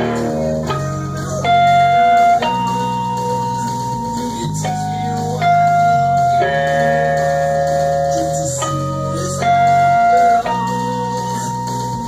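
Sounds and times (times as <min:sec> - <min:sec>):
electric guitar sustained notes: 0:00.0 - 0:12.0
low backing part: 0:00.0 - 0:12.0.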